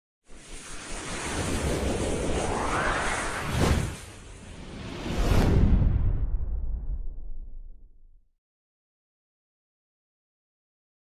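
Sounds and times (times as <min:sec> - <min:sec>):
whooshing rush: 0:00.3 - 0:07.1
low rumble: 0:01.5 - 0:08.3.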